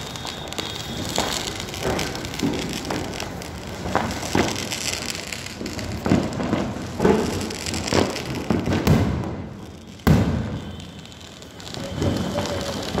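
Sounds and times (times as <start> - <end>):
distant firecrackers banging: 0.0 - 13.0.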